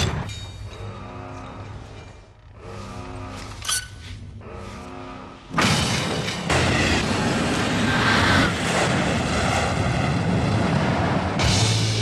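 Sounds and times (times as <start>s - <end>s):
deep steady tone: 0.6s - 5.5s
dense rumble of sound effects: 4.3s - 12.0s.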